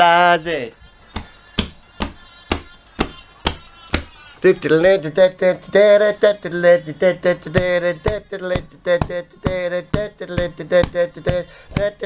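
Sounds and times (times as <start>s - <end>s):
man singing along: 0.0s - 12.0s
hand knocking time: 1.1s - 4.1s, 7.2s - 12.0s.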